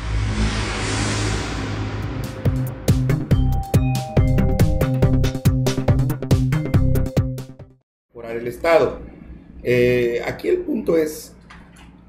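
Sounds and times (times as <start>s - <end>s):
sustained whoosh: 0.0s - 3.4s
deep low drone: 0.0s - 3.5s
electronic music sting: 0.0s - 6.9s.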